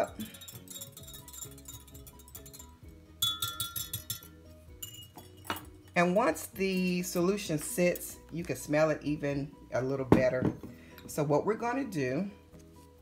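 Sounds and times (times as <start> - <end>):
whisk clinking against glass: 0.0 - 6.0
soft background music: 0.0 - 13.0.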